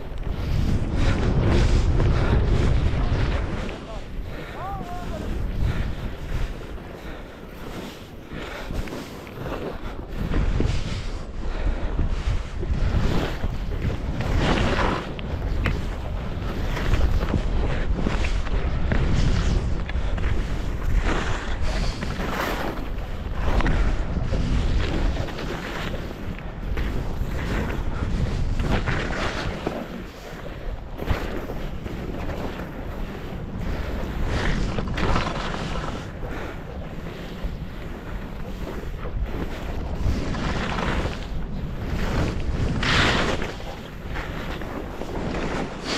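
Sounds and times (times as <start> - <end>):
skis scraping over snow: 0.0 - 45.9
wind rumbling on microphone: 0.0 - 45.9.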